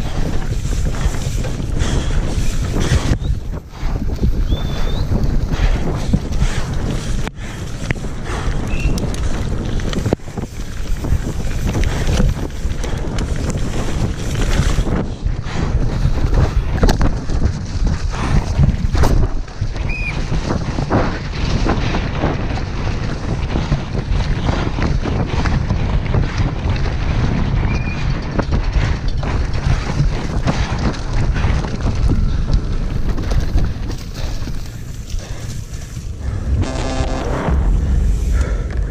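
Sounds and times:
bike rattling and knocking: 0.0 - 38.9
bike tyres rumbling on dirt: 0.0 - 38.9
wind buffeting microphone: 0.0 - 38.9.

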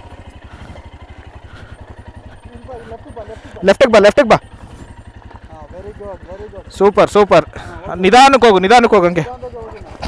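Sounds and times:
motorcycle idling: 0.0 - 10.0.

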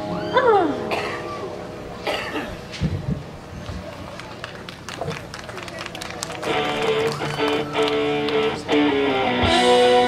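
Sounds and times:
faint voices: 0.0 - 8.9
guitar music: 6.4 - 10.0.

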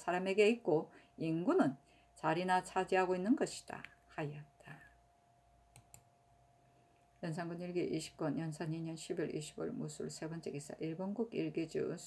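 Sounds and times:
faint steady hum: 0.0 - 12.0
faint clicks: 5.7 - 6.1.

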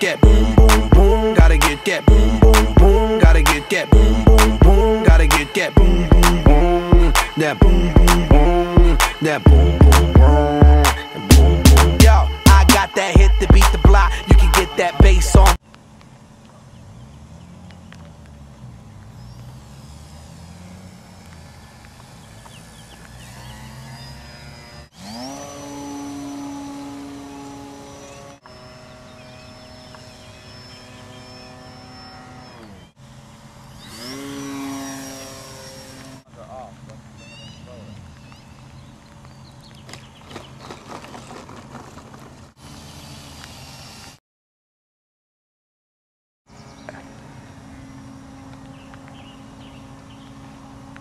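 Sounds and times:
electric motor and propeller whine: 0.0 - 38.8, 40.2 - 44.2, 46.5 - 51.0.

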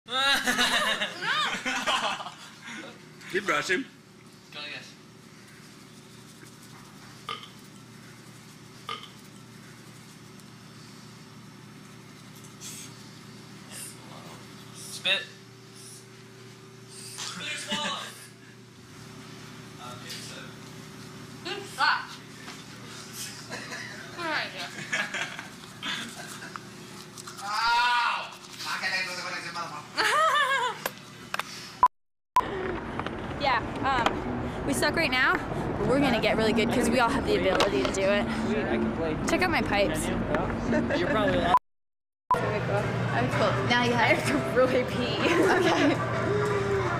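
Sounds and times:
low room hum: 0.1 - 31.8, 42.4 - 46.9
mouth sounds while brushing teeth: 5.4 - 15.0, 25.3 - 27.7.

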